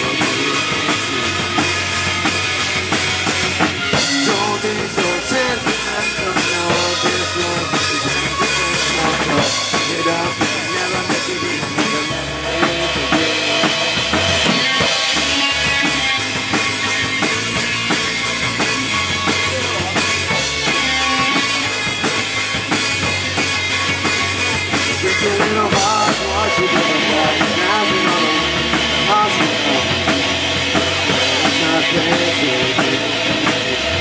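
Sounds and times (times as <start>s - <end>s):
bass: 0.0s - 34.0s
drum kit kick and snare: 0.0s - 34.0s
electric guitars: 0.0s - 34.0s
keyboard: 0.0s - 34.0s.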